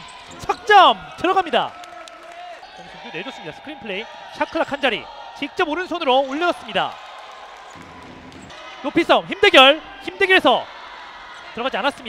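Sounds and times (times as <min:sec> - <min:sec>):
low arena noise: 0:00.0 - 0:12.0
commentator's voice: 0:00.3 - 0:01.8, 0:08.8 - 0:10.7, 0:11.4 - 0:12.0.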